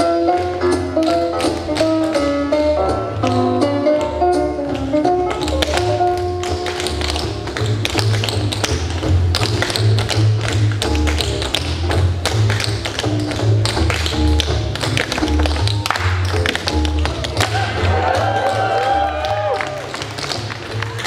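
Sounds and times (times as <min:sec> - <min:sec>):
tap shoes tapping: 0:00.3 - 0:02.5, 0:03.2 - 0:21.0.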